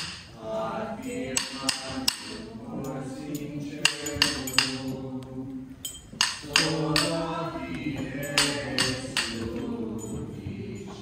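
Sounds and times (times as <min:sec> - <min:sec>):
hymn singing: 0:00.0 - 0:11.0
sharp ringing clinks: 0:05.8 - 0:06.2.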